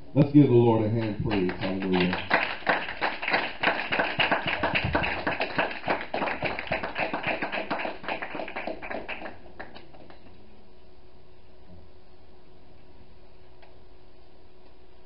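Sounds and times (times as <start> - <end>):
congregation applauding: 0.8 - 10.2.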